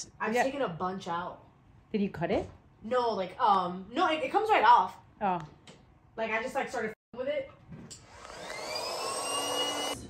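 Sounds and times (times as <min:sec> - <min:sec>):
small electric motor whine: 0:08.0 - 0:10.0.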